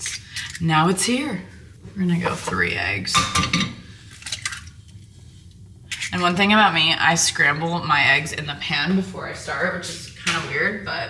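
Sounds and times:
wet squishing of egg: 3.9 - 6.2.

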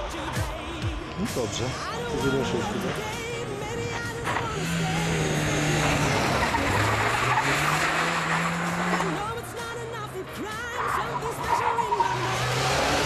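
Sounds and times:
rally car engine revving: 0.0 - 13.0.

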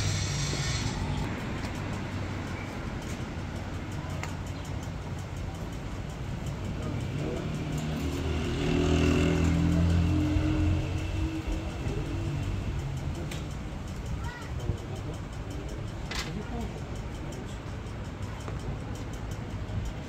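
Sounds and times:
car engine: 0.0 - 1.9
vehicles passing: 0.0 - 20.0.

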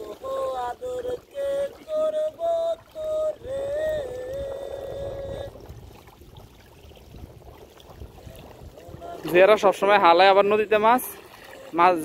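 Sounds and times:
person holding a long note: 0.0 - 5.7
water sloshing around wading man: 0.0 - 12.0.

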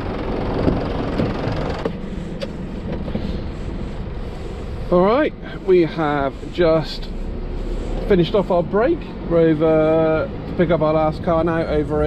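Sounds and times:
lorry diesel engine idling: 0.0 - 12.0.

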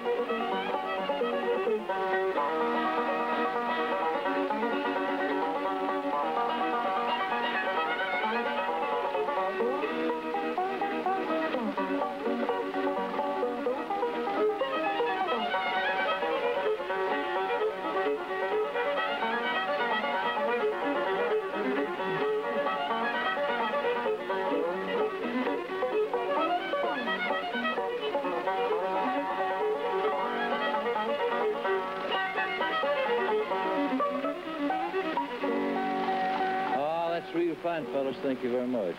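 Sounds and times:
banjo picking: 0.0 - 38.9
bowed fiddle melody: 0.0 - 38.9.

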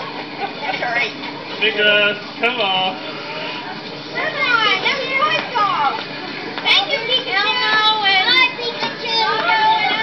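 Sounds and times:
children calling out: 6.6 - 10.0.

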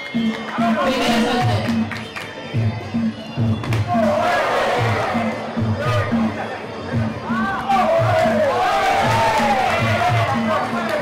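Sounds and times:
crowd noise: 0.0 - 11.0
repeating drum pattern: 0.1 - 11.0.

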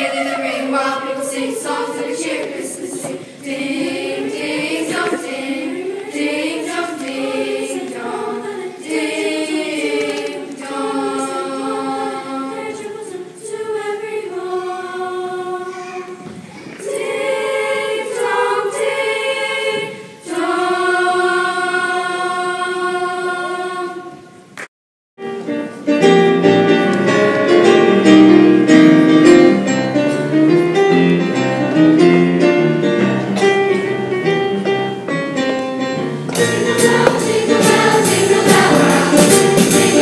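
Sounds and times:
chorus singing held notes: 0.0 - 24.5, 36.3 - 40.0.

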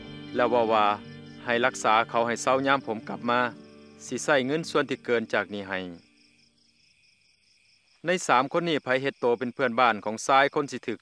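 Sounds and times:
faint cricket chirping trill: 0.0 - 11.0.

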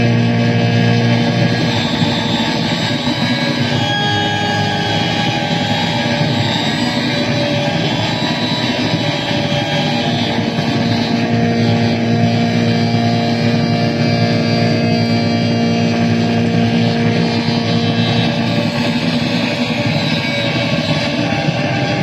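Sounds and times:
saxophone through effects pedals: 0.0 - 22.0
strong low drone: 0.0 - 22.0.

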